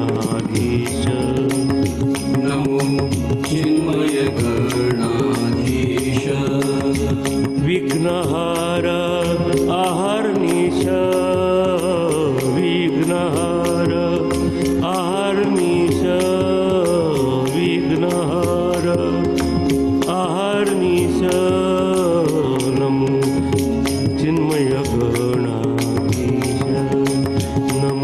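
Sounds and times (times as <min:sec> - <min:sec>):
light percussion strikes: 0:00.0 - 0:28.0
man singing devotional song: 0:00.0 - 0:28.0.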